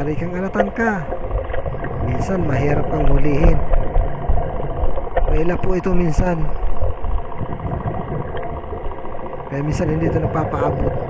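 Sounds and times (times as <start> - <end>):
low motor hum underwater: 0.0 - 11.0.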